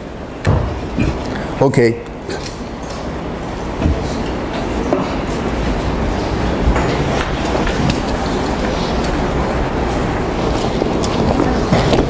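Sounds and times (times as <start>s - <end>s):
low rumbling noise: 0.0s - 12.0s.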